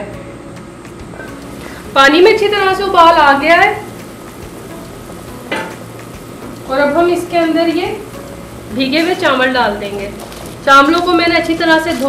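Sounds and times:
broth bubbling in a pot: 1.1 - 12.0.

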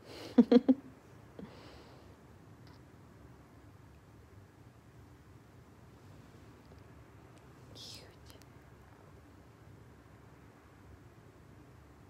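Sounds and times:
quiet whispered hiss: 0.0 - 12.0.

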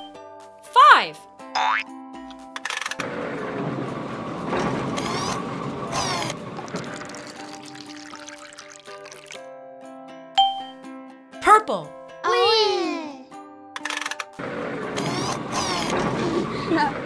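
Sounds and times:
cartoon boing: 1.6 - 1.9
rushing gurgling machine noise: 3.0 - 9.4, 14.4 - 17.0
light children's music: 6.9 - 17.0.

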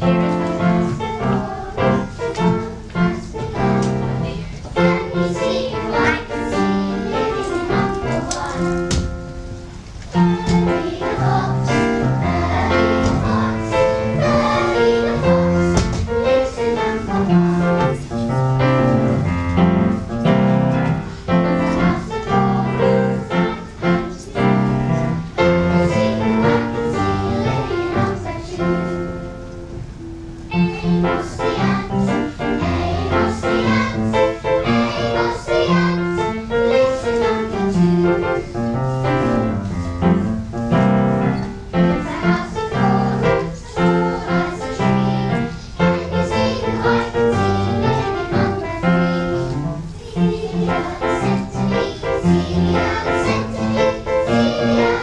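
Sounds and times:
children singing: 0.0 - 9.2, 10.1 - 20.0, 20.7 - 29.4, 30.5 - 39.6, 41.2 - 55.0
keyboard accompaniment: 0.0 - 55.0.

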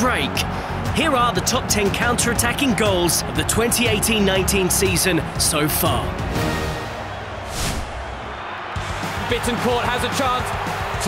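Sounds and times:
intro theme music: 4.0 - 8.1
whoosh transition effect: 7.4 - 8.1.

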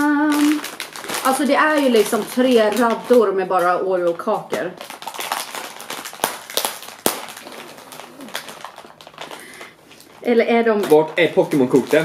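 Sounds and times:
plastic wrapper crackling: 0.0 - 12.0.

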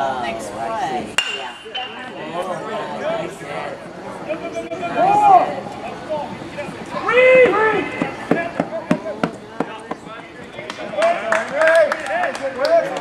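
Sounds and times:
spectators shouting and cheering: 1.0 - 13.0
hand claps: 10.6 - 13.0.

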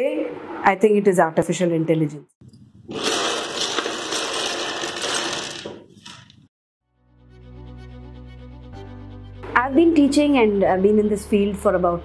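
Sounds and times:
plastic blocks clattering on table: 2.9 - 6.5.

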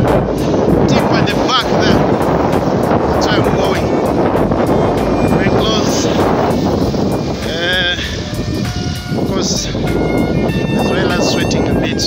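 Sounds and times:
wind noise on phone microphone: 0.0 - 12.0.

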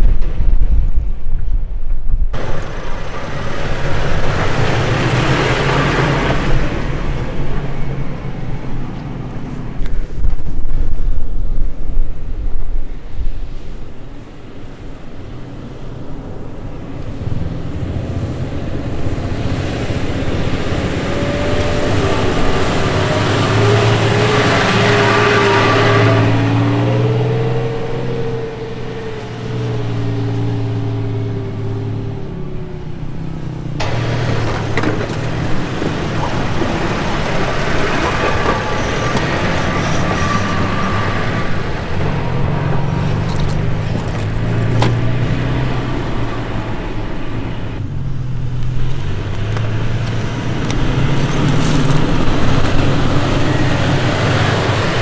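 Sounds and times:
pickup engine driving through sand: 2.4 - 10.6, 13.4 - 55.0.

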